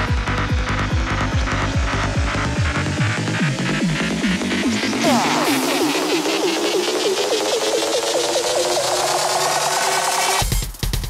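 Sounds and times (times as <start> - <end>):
synth downward pitch sweeps: 0.0 - 10.4.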